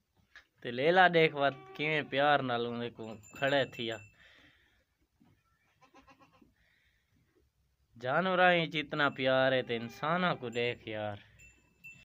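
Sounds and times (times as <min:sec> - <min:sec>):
faint animal bleat: 0:01.3 - 0:02.4, 0:05.3 - 0:06.5.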